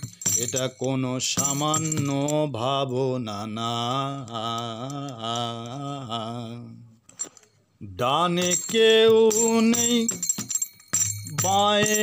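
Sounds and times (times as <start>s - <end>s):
man singing long notes: 0.4s - 7.0s.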